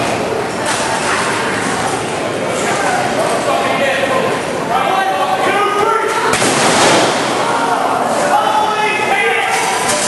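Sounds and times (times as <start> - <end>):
light tubes bursting with loud pop: 6.3 - 7.5.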